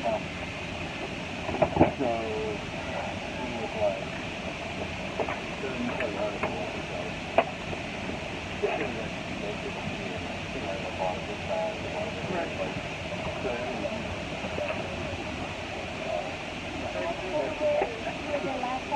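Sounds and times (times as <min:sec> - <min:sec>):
airliner cabin air noise: 0:00.0 - 0:18.9
passengers murmuring: 0:01.6 - 0:04.2, 0:04.8 - 0:18.9.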